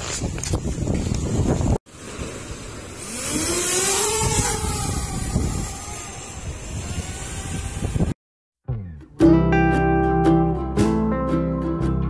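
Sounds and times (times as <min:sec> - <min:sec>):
drone propellers whining: 0:02.0 - 0:08.2.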